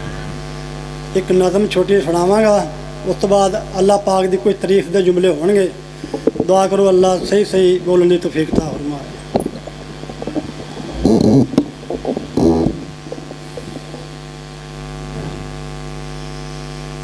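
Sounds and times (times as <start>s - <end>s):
electrical mains hum: 0.0s - 17.0s
short bursts of noise: 8.5s - 14.3s.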